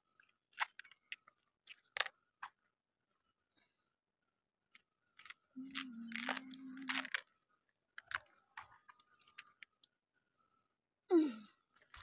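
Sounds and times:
low steady hum: 0:00.0 - 0:12.0
cabbage leaves crunching and tearing: 0:05.2 - 0:07.2.

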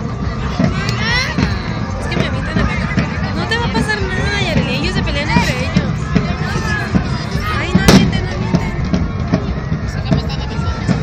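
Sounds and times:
crowd shouting: 0:00.0 - 0:11.0
firecracker bang: 0:04.5 - 0:11.0.

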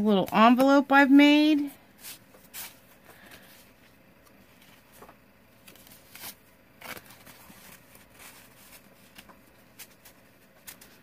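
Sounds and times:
paper envelope crinkling: 0:04.4 - 0:11.0.

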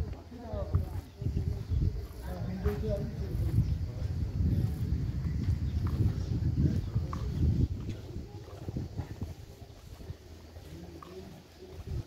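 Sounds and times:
walking footsteps: 0:00.0 - 0:12.0
wind buffeting microphone: 0:00.0 - 0:12.0.

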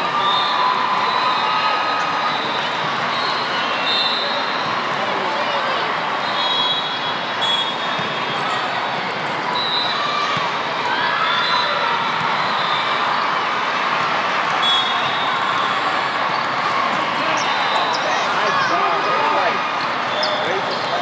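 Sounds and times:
chatter of many voices: 0:00.0 - 0:21.0
shoes squeaking on court floor: 0:14.7 - 0:21.0.

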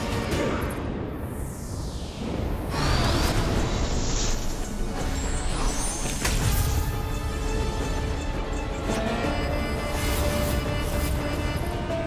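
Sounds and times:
whooshes: 0:00.6 - 0:06.4.

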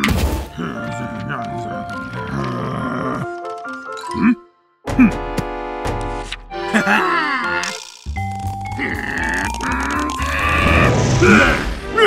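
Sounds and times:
cartoon character grunting: 0:06.7 - 0:07.8, 0:08.7 - 0:10.4
background music rising note: 0:10.0 - 0:12.0.

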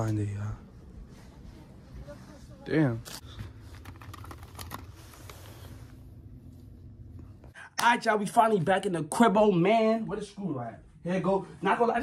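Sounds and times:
steady low hum: 0:00.0 - 0:07.8.

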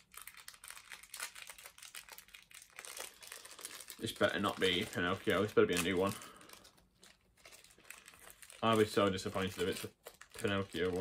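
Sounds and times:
foil packet crinkling: 0:00.0 - 0:11.0.

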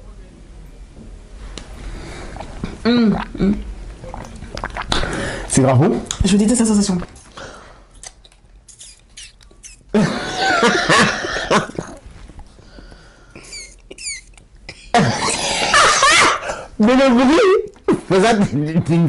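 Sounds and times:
short high squeaks: 0:08.7 - 0:09.9
people coughing: 0:10.0 - 0:12.0, 0:13.4 - 0:16.7
people laughing hard: 0:15.6 - 0:16.4.

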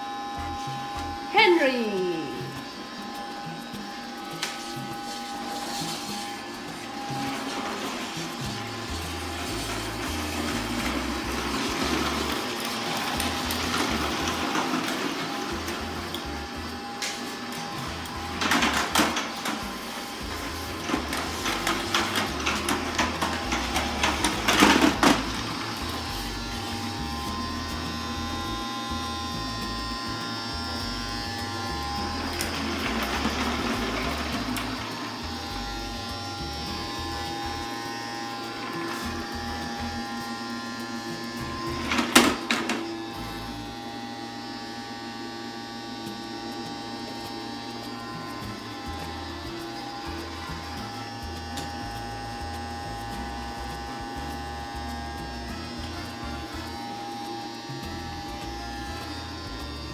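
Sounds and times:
toy vacuum motor running: 0:00.0 - 0:59.9.

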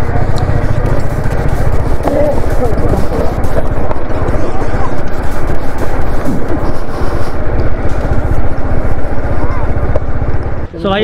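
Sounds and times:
faint voices: 0:00.0 - 0:10.2
motorcycle engine rumbling: 0:00.0 - 0:11.0.

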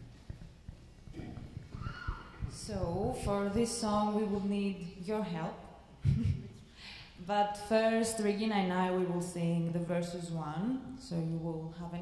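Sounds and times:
footsteps low thumps: 0:00.0 - 0:04.2.

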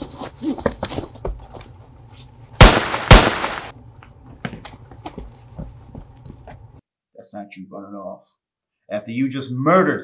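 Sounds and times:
gunshots: 0:02.6 - 0:03.7.

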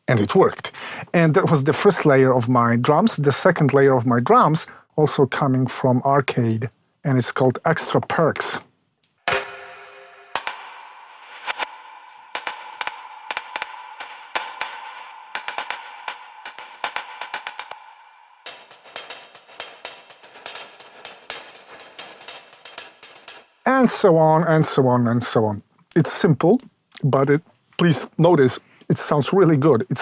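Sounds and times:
percussive clicks and knocks: 0:10.3 - 0:23.7.

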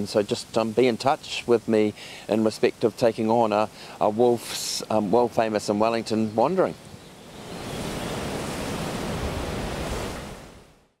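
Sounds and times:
steady rushing noise: 0:07.0 - 0:10.8.

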